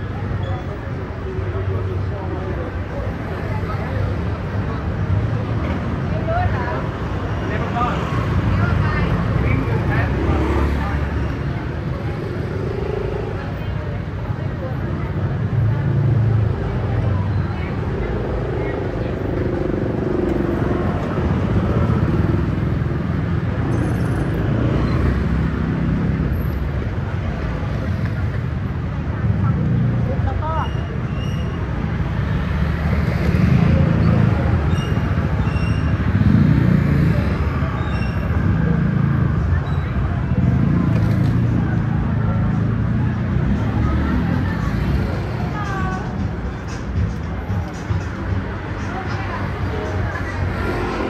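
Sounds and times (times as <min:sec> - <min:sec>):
people talking: 0:00.0 - 0:22.5, 0:32.6 - 0:51.0
scooters and cars passing: 0:00.0 - 0:51.0.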